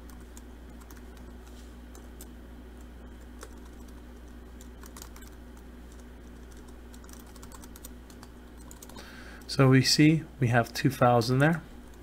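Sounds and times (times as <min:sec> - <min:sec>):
computer keyboard keystrokes: 0:00.0 - 0:09.0
steady low hum: 0:00.0 - 0:12.0.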